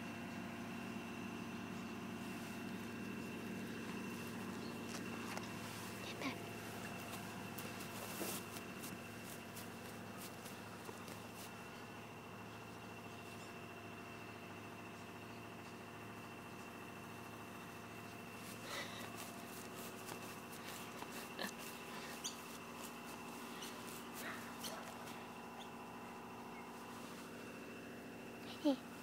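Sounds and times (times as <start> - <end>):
puppies squeaking and yipping: 20.2 - 25.8.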